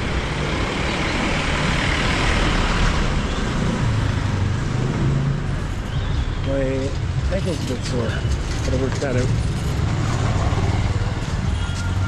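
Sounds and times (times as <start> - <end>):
traffic rush: 0.0 - 12.0.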